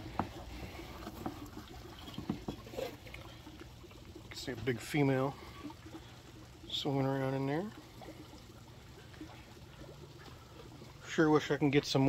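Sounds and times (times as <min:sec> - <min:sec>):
water drips and splashes: 0:00.0 - 0:12.0.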